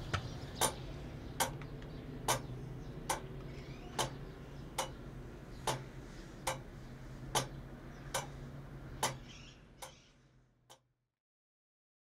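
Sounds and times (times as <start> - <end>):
low steady hum: 0.0 - 10.7
clock ticking: 1.4 - 2.5, 3.1 - 4.2, 4.8 - 5.0, 5.6 - 6.7, 7.3 - 8.4, 9.0 - 9.2.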